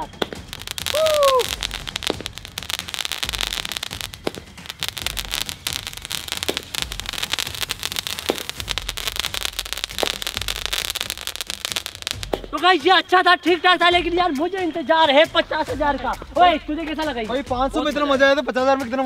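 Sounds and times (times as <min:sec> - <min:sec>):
firework pops: 0:00.0 - 0:12.6
firework crackling and hissing: 0:00.0 - 0:18.8.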